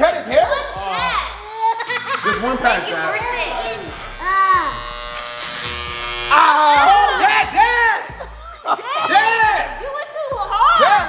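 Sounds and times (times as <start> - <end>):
electric hair clippers buzzing: 2.0 - 7.8.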